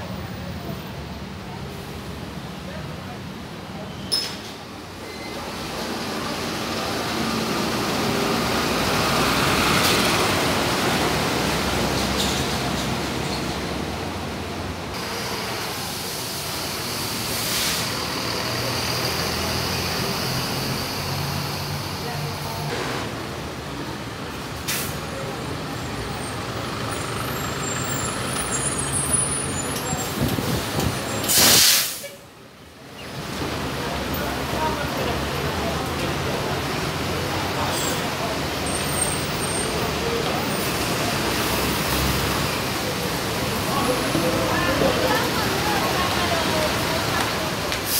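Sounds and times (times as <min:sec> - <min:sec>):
bus engines and road noise: 0:00.0 - 0:47.9
compressed air hiss: 0:15.7 - 0:18.0, 0:31.2 - 0:32.2.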